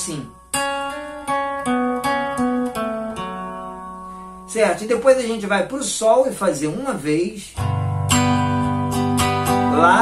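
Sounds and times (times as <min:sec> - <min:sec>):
plucked guitar notes: 0:00.0 - 0:04.5, 0:07.6 - 0:10.0.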